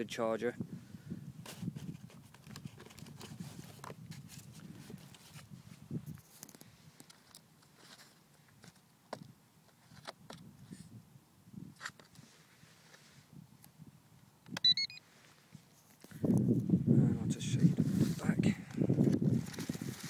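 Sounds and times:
handling clicks and rustles: 1.5s - 5.5s
high electronic beeps: 14.6s - 15.0s.

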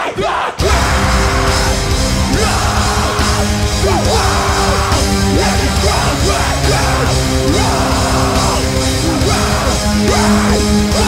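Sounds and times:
distorted guitars: 0.6s - 11.0s
metal band playing: 0.6s - 11.0s.

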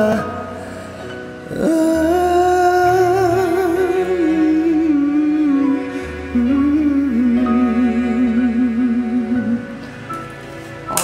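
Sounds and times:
karaoke ballad backing track: 0.0s - 11.0s.

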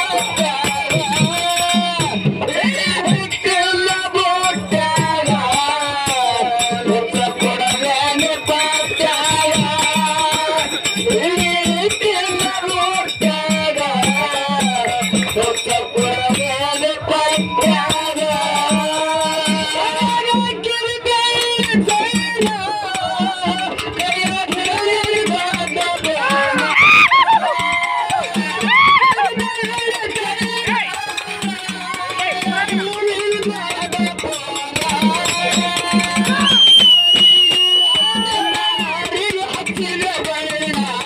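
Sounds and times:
man singing: 0.0s - 41.0s
drum strokes: 21.4s - 41.0s.

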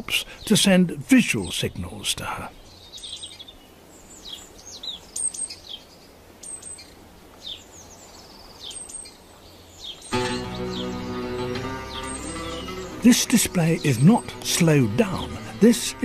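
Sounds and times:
faint outdoor hiss: 0.0s - 16.0s
small birds chirping: 0.0s - 16.0s
music with held notes: 10.1s - 16.0s.

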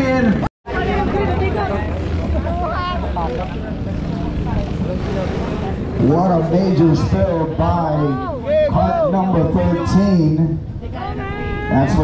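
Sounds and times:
faint voices: 0.0s - 12.0s
go-kart engines droning: 0.0s - 12.0s.

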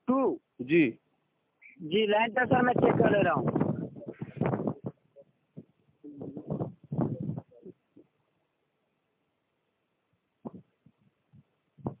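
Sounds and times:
muffled low thumps: 2.4s - 8.2s, 10.4s - 12.0s.

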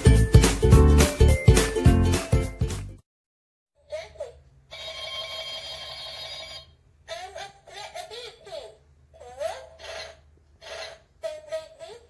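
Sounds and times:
electronic toy ringing tone: 4.7s - 6.8s.

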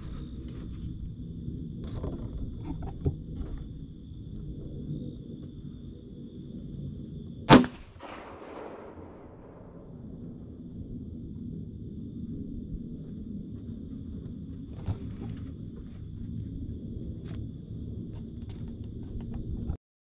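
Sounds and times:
rifle shot with echo: 7.5s - 9.9s.

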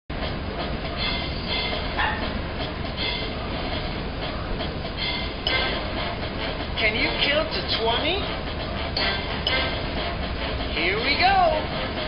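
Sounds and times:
low rumbling noise: 0.1s - 12.0s.

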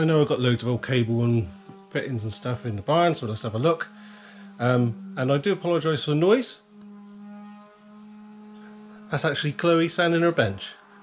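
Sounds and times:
electric sander humming: 0.0s - 11.0s.

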